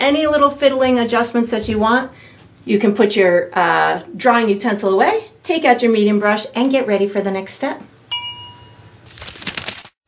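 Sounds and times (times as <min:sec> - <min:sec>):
bright ding: 0:08.1 - 0:08.9.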